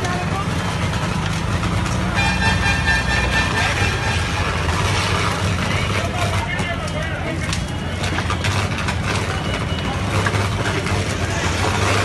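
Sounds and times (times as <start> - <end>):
people's voices: 0.0 - 2.3, 2.9 - 12.0
low street rumble: 0.0 - 12.0.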